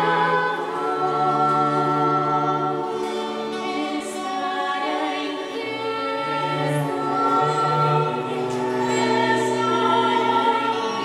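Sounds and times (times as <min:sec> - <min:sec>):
low bowed cello notes: 0:00.0 - 0:11.0
women's choir singing a hymn: 0:00.0 - 0:11.0.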